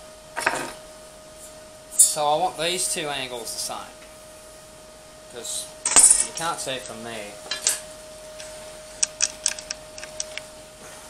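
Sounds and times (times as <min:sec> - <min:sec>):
faint steady hum: 0:00.0 - 0:11.0
metal clunk and scrape: 0:00.4 - 0:00.8.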